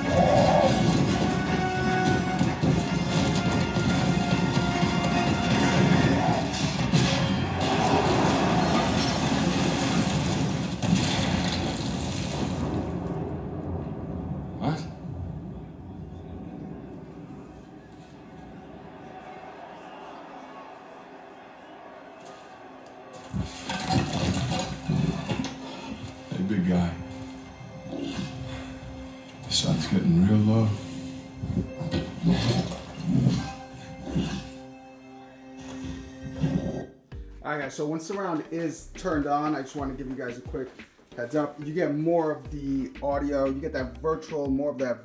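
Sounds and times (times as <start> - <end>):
loud film music and effects: 0.0 - 41.6.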